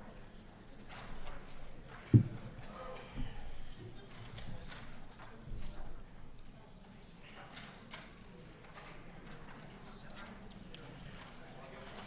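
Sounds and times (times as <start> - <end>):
footsteps on stage: 2.0 - 2.7.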